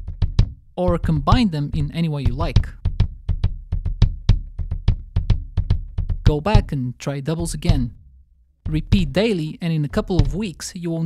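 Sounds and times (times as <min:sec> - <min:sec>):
bass drum pedal strokes: 0:00.0 - 0:10.8.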